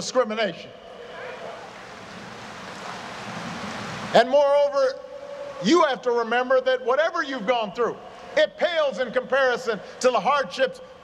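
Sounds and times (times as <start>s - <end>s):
crowd applauding and cheering: 1.0s - 4.2s.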